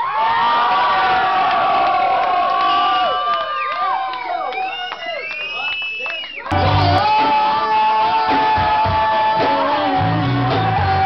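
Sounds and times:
audience cheering: 0.0 - 11.0
high-pitched whoops and screams: 0.0 - 11.0.

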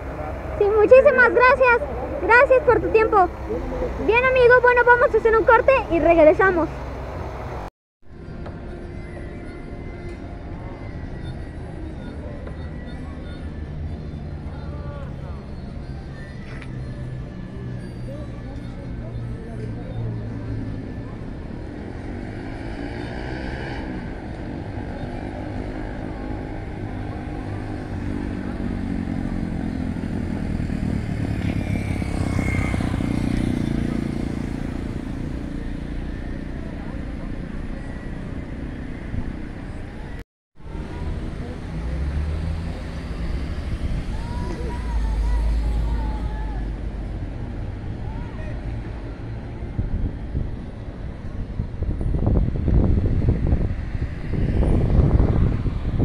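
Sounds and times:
vehicle engines passing: 0.0 - 56.0.

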